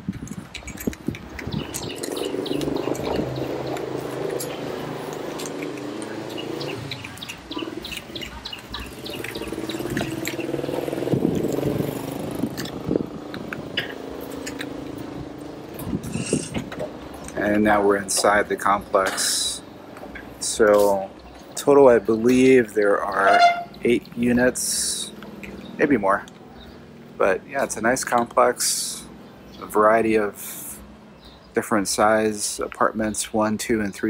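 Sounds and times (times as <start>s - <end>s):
gate rattling along track: 0.6s - 15.9s.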